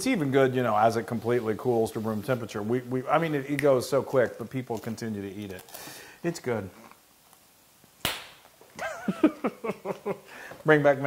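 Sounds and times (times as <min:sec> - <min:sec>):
sharp smack: 0:08.0 - 0:08.4
people laughing: 0:08.8 - 0:10.3.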